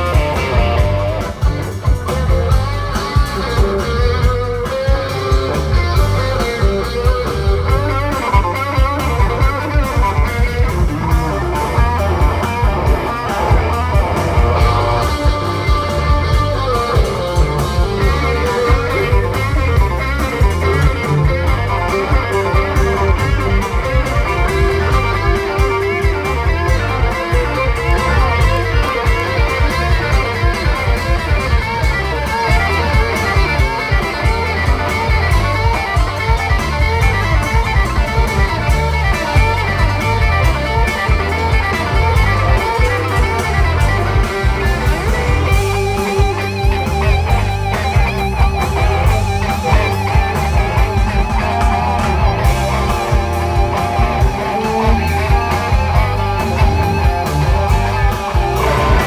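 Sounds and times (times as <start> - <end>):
bass guitar: 0.0 - 59.0
drums keeping a steady beat: 0.0 - 59.0
electric guitars: 0.0 - 59.0.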